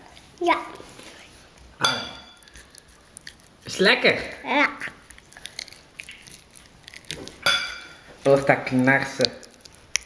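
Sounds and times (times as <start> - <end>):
child chewing meat: 0.0 - 10.0.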